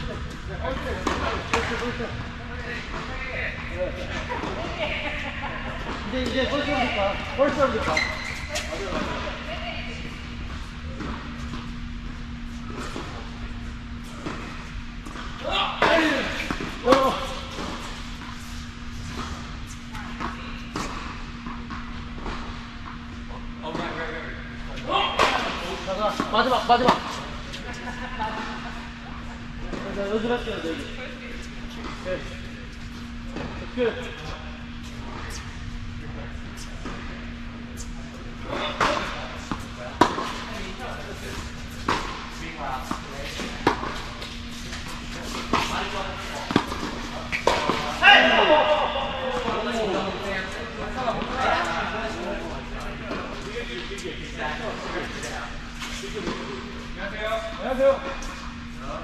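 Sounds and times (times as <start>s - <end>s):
steady low hum: 0.0s - 59.0s
tennis balls hit by racquets: 0.2s - 2.2s, 38.4s - 49.8s
voices: 23.3s - 59.0s
tennis balls bouncing on court: 38.5s - 48.0s.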